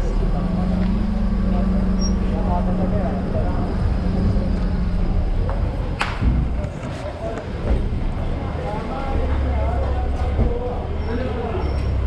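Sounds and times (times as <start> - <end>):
street noise rumble: 0.0 - 12.0
vehicle engine humming: 0.0 - 12.0.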